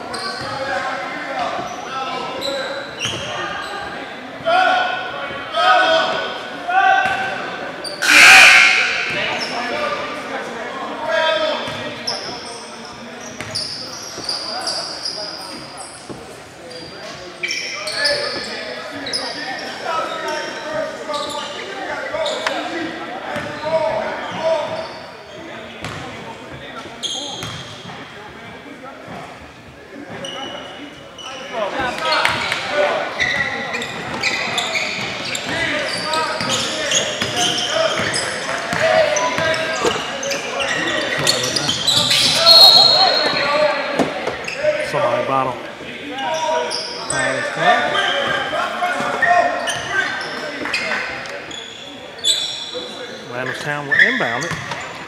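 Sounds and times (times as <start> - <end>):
voices in echoing gym: 0.0 - 55.0
basketball bouncing on court: 13.4 - 13.6, 25.8 - 26.1, 27.3 - 28.0, 37.2 - 40.0, 54.4 - 54.8.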